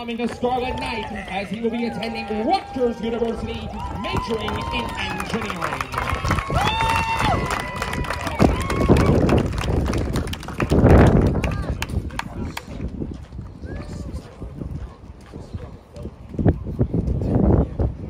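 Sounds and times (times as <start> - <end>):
people clapping: 0.0 - 13.3
voices and chatter: 0.0 - 18.0.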